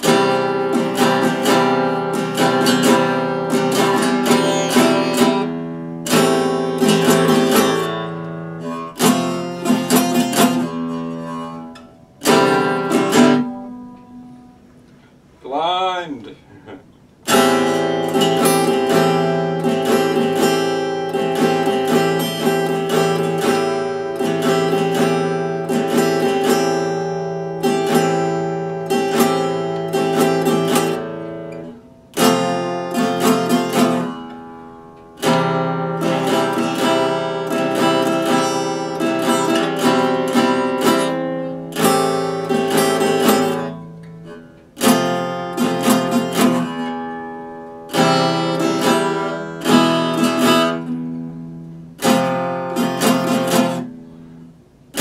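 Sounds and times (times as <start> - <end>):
acoustic guitar strummed in chords: 0.0 - 15.4, 16.9 - 55.0.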